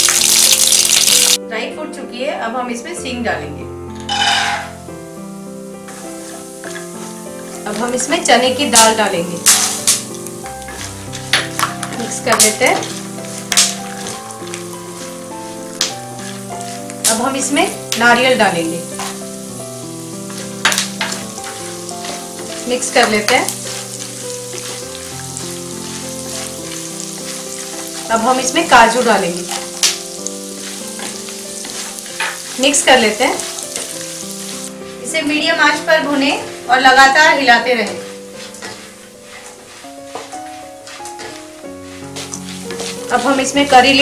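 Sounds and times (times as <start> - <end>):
peanuts sizzling in hot oil: 0.0 - 1.4, 4.1 - 44.0
instrumental background music: 0.1 - 44.0
wooden spatula stirring: 9.5 - 35.2, 37.8 - 44.0.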